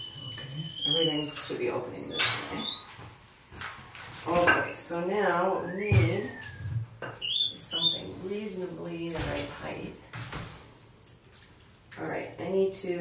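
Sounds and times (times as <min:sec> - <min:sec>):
finches chirping and whistling: 0:00.0 - 0:03.0, 0:05.2 - 0:10.4, 0:11.0 - 0:13.0.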